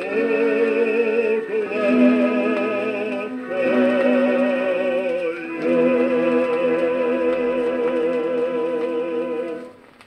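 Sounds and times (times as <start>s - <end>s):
man singing with vibrato: 0.0s - 9.7s
orchestra: 0.0s - 9.8s.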